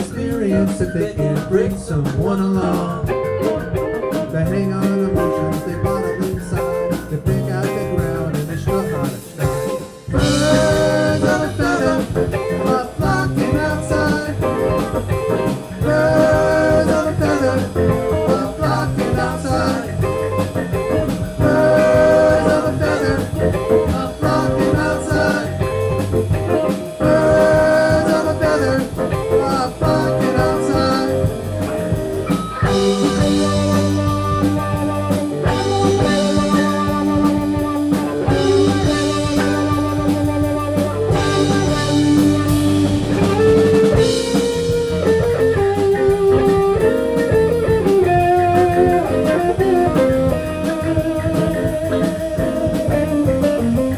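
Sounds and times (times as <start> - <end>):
live rock band playing: 0.0 - 53.9.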